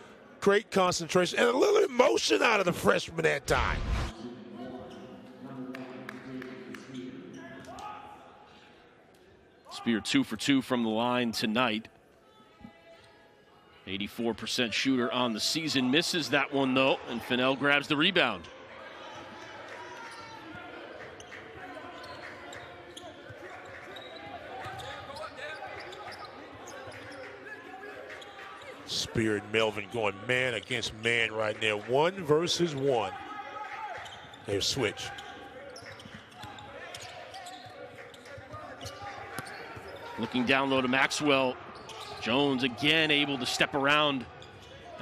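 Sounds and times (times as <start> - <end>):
players calling out: 15.0 - 45.0.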